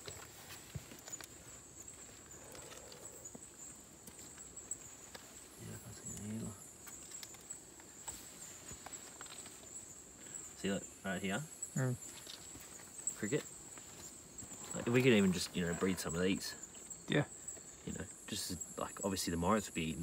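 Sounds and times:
rustles in undergrowth: 0.0 - 18.2
night insects chorus: 0.0 - 20.0.

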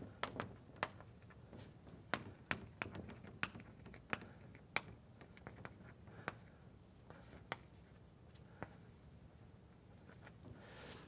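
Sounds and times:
chalk tapping on blackboard: 2.1 - 6.5, 7.1 - 7.9.

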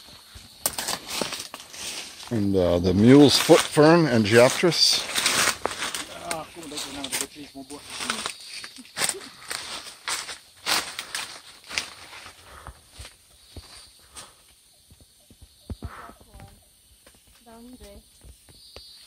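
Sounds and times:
leaves brushing and rustling: 0.0 - 14.2
twigs crackling: 0.0 - 14.6
footsteps in undergrowth: 0.0 - 19.0.

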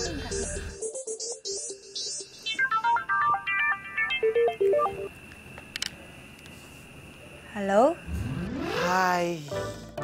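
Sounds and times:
phone ringtone: 0.2 - 5.1
sharp clicks: 5.2 - 6.6.

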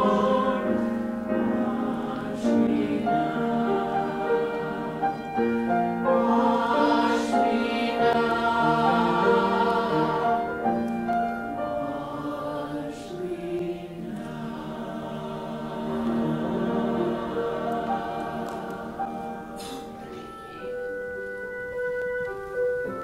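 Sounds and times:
choir singing a hymn: 0.0 - 20.9.

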